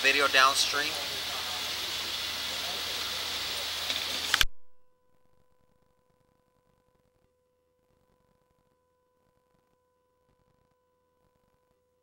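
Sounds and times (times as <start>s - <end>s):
steady hiss: 0.0s - 4.5s.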